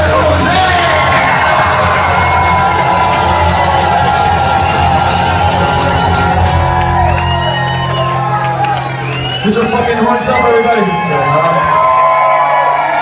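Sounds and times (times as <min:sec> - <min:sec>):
live band playing loud: 0:00.0 - 0:11.7
crowd cheering and whooping: 0:00.0 - 0:13.0.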